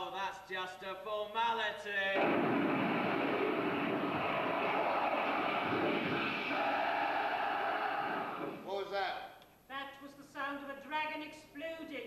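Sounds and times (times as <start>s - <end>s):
loud roar of explosion effect: 2.2s - 8.6s.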